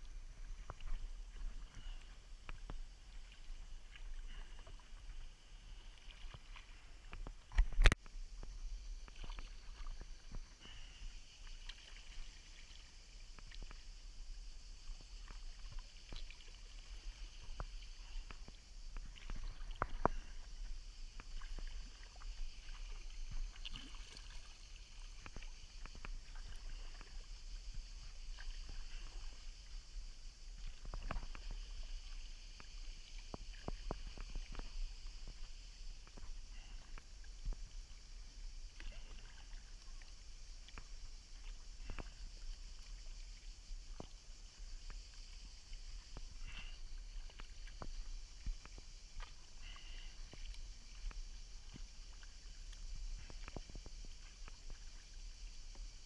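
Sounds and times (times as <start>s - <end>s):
paddle dipping into water: 0.0s - 14.0s, 14.8s - 56.0s
water splashes and drips: 0.0s - 56.0s.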